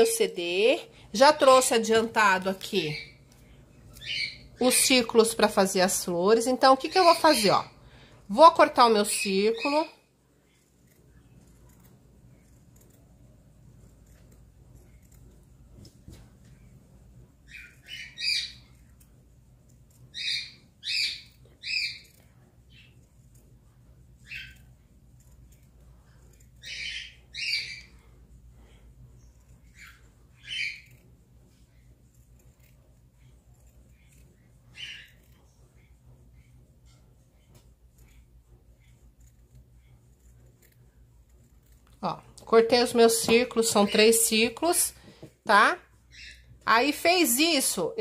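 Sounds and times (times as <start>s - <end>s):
faint low hum: 0.0s - 48.0s
bird chirping: 17.4s - 18.8s, 20.1s - 22.1s, 26.6s - 28.0s.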